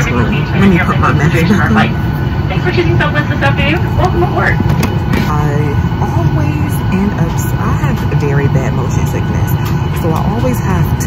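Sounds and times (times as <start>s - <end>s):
airliner cabin rumble: 0.0s - 11.0s
voices talking: 0.0s - 11.0s.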